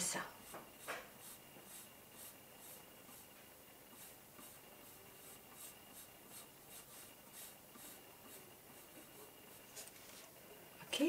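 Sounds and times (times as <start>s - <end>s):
pencil scratching on paper: 0.1s - 10.2s.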